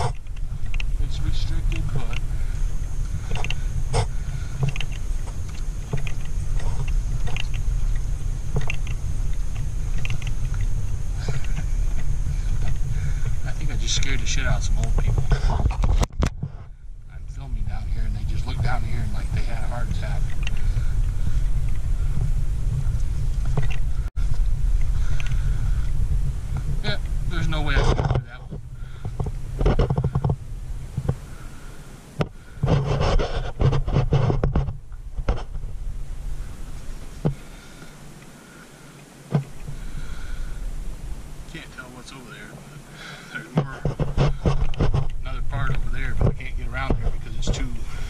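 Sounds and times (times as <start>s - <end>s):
rustling or crunching bursts: 0.0s - 48.0s
wind buffeting microphone: 0.0s - 48.0s.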